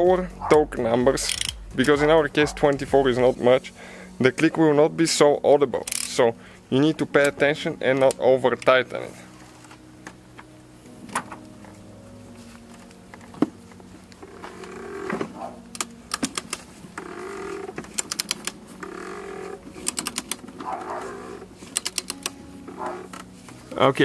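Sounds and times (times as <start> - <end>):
torque wrench ratchet clicking: 1.2 - 1.6, 5.9 - 6.2, 18.0 - 19.2, 19.8 - 20.4, 21.8 - 22.4.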